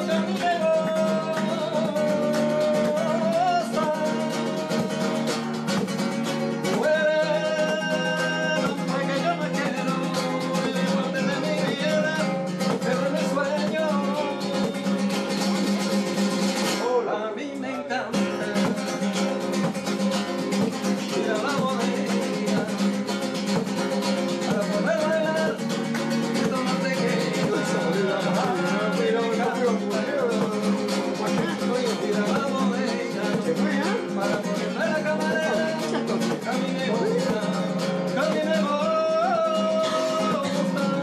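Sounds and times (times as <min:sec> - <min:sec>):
classical guitar strummed fast: 0:00.0 - 0:41.0.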